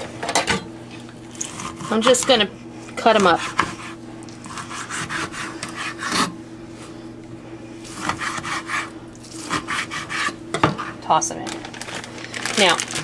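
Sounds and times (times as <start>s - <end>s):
knife sawing through lime rind: 1.4s - 2.5s, 3.1s - 6.4s, 7.9s - 10.9s.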